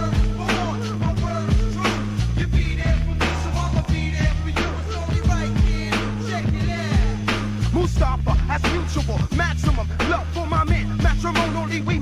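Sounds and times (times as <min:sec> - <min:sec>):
bass line and drum beat: 0:00.0 - 0:12.0
rapping over a beat: 0:00.0 - 0:12.0.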